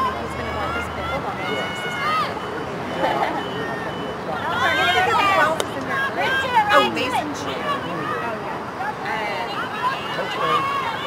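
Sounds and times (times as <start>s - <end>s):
voices calling and shouting: 0.0s - 11.0s.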